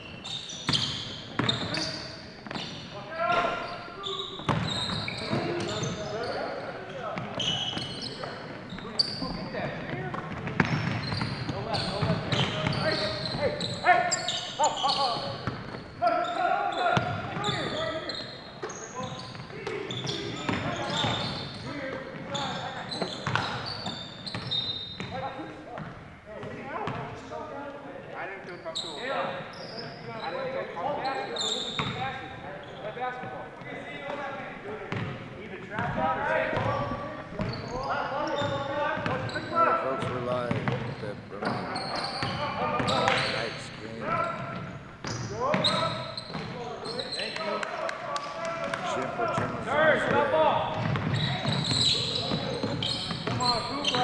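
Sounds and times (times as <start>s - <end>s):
sneaker squeaks: 0.0s - 27.6s, 28.3s - 47.7s, 48.8s - 54.0s
players calling out: 0.2s - 27.3s, 35.8s - 54.0s
basketball dribbling: 9.3s - 13.4s, 40.0s - 40.9s, 49.3s - 54.0s.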